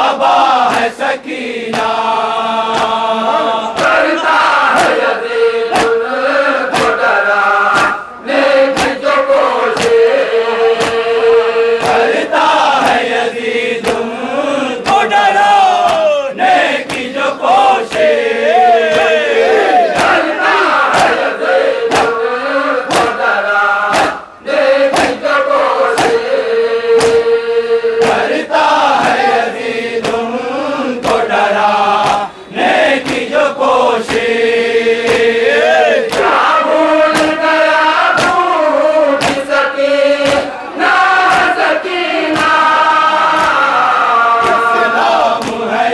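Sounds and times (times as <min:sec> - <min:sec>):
men chanting a lament: 0:00.0 - 0:45.9
hands beating on chests: 0:05.7 - 0:06.0, 0:06.7 - 0:07.0, 0:21.9 - 0:22.2, 0:22.9 - 0:23.2, 0:23.9 - 0:24.2, 0:37.1 - 0:37.4, 0:39.2 - 0:39.5.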